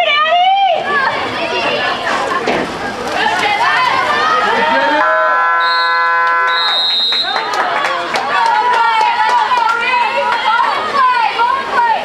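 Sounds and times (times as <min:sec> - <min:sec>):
voices of players and spectators: 0:00.0 - 0:12.0
high steady tone: 0:05.0 - 0:06.9
electronic game horn buzz: 0:05.0 - 0:07.1.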